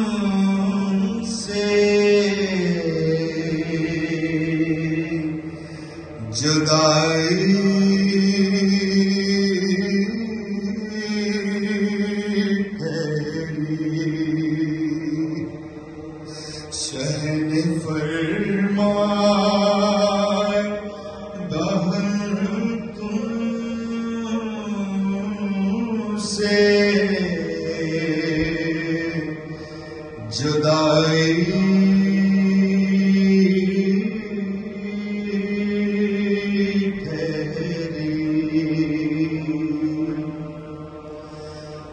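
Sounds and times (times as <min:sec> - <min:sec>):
man chanting a lament: 0:00.0 - 0:15.6, 0:16.4 - 0:41.1.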